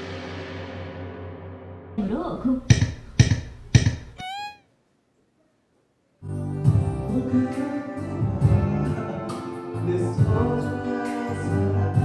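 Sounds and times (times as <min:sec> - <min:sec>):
pitched tone bending: 0:02.0 - 0:04.6.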